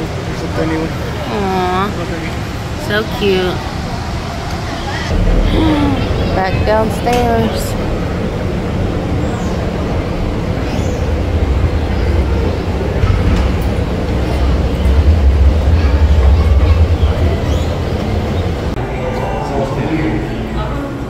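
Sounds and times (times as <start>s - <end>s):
faint hum: 0.4s - 21.0s
escalator rumbling: 1.2s - 18.8s.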